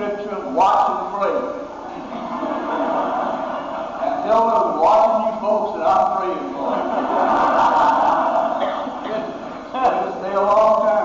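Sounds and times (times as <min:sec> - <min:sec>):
congregation laughing: 0:01.7 - 0:11.0.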